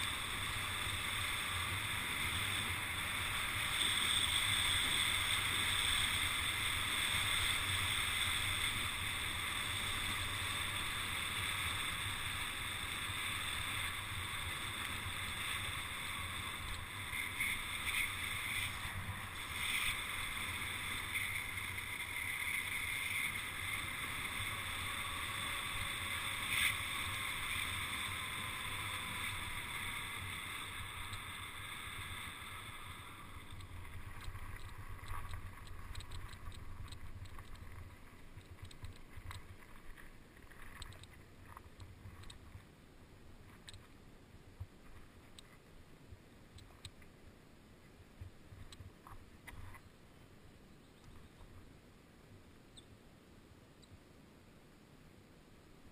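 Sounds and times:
bike tyre noise on road: 0:00.0 - 0:53.0
tyres ticking on gravel: 0:32.5 - 0:42.6.

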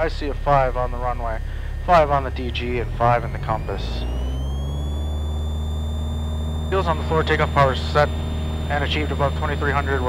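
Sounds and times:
propeller plane engine running up: 0:00.0 - 0:10.0
rising engine whine: 0:00.0 - 0:10.0.

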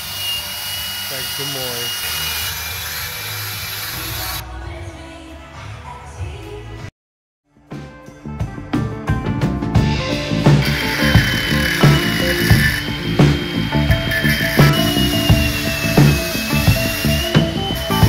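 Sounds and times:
angle grinder cutting steel: 0:00.0 - 0:04.4, 0:10.6 - 0:18.0
background music with steady beat: 0:07.6 - 0:18.0.

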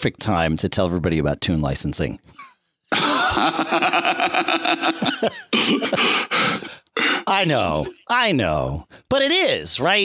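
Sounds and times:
men laughing: 0:02.4 - 0:08.0.

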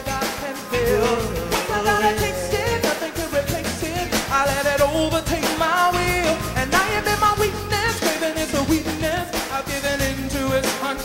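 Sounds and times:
band playing: 0:00.0 - 0:11.0
steady drum beat: 0:00.0 - 0:11.0
woman singing into a microphone: 0:00.7 - 0:03.1.

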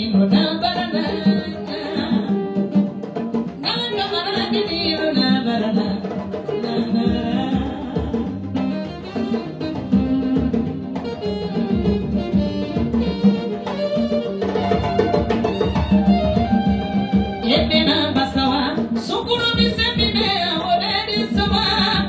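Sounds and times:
woman singing into a microphone: 0:00.0 - 0:12.3, 0:16.7 - 0:22.0
drums playing dance beat: 0:06.9 - 0:18.7.

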